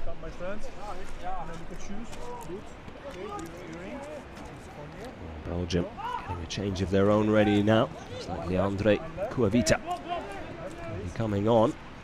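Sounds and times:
distant players shouting: 0:05.9 - 0:06.6, 0:07.2 - 0:11.1.

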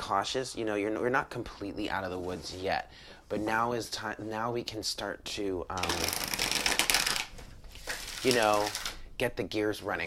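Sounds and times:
cards being riffle-shuffled: 0:05.8 - 0:09.0.

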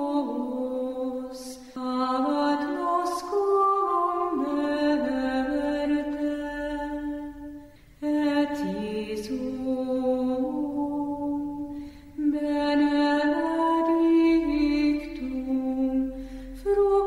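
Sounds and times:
slow sung chant: 0:00.0 - 0:17.0.

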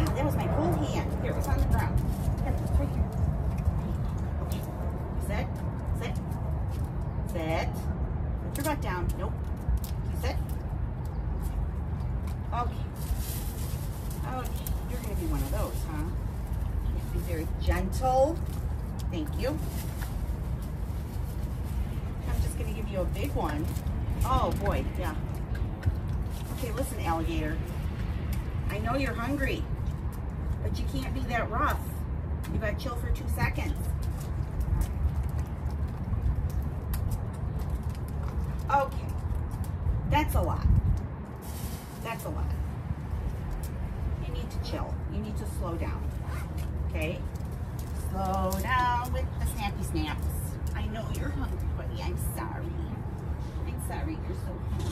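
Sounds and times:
woman speaking: 0:00.0 - 0:03.4, 0:04.4 - 0:06.3, 0:07.2 - 0:09.4, 0:10.0 - 0:10.5, 0:12.4 - 0:13.0, 0:14.2 - 0:16.2, 0:17.0 - 0:18.4, 0:19.1 - 0:19.7, 0:22.2 - 0:25.3, 0:26.4 - 0:27.7, 0:28.6 - 0:29.7, 0:30.6 - 0:34.0, 0:38.6 - 0:39.2, 0:40.0 - 0:40.7, 0:42.0 - 0:42.7, 0:44.2 - 0:46.2, 0:46.8 - 0:47.3, 0:47.9 - 0:54.9
steady low rumble: 0:00.0 - 0:54.9
dog claws clicking on concrete: 0:08.5 - 0:12.5, 0:23.2 - 0:28.6, 0:33.2 - 0:40.1, 0:46.0 - 0:51.7.

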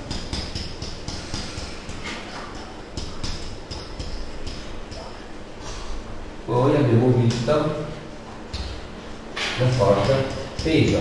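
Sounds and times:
steady low hum: 0:00.0 - 0:11.0
pen tapping and scratching on board: 0:00.1 - 0:05.1, 0:09.9 - 0:11.0.

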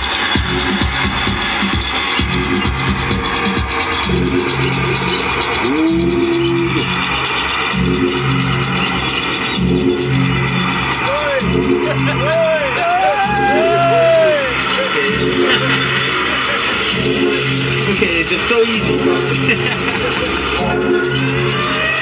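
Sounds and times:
drum and bass music: 0:00.0 - 0:22.0
synth note sliding up: 0:05.6 - 0:07.0.

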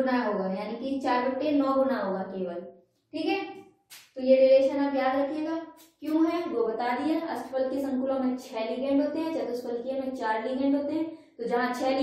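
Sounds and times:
woman lecturing: 0:00.0 - 0:12.0
sharp click: 0:03.9 - 0:04.2.

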